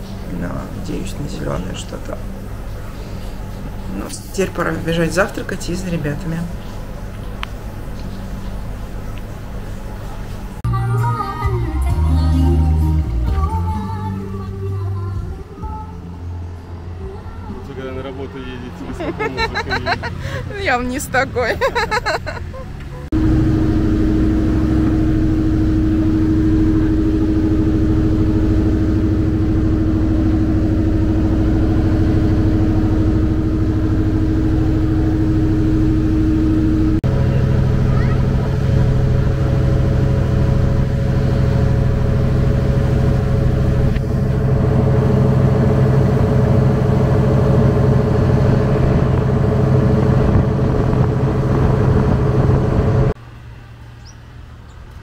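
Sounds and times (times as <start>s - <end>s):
boat engine droning: 0.0s - 54.6s
wind: 0.0s - 55.0s.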